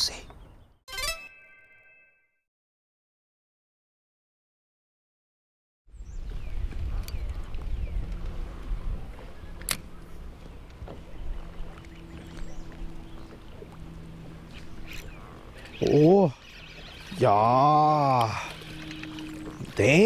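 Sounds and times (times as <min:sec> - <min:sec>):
wind rumbling on microphone: 0:05.9 - 0:15.8
water moving around boat: 0:06.2 - 0:20.0.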